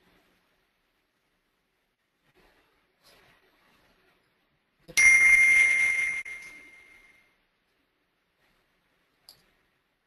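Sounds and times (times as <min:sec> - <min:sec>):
bell-like ding ringing: 0:05.0 - 0:07.3.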